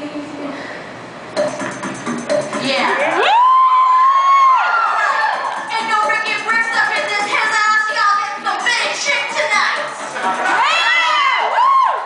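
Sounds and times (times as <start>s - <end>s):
audience cheering: 3.0s - 5.7s, 10.2s - 12.0s.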